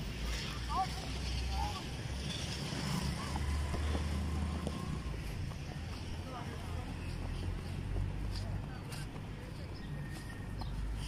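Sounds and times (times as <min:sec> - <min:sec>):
faint distant voices: 0:00.5 - 0:11.0.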